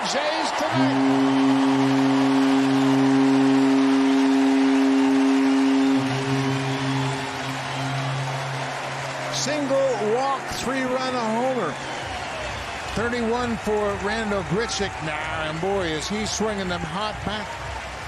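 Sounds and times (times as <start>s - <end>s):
low stadium horn: 0.2s - 18.0s.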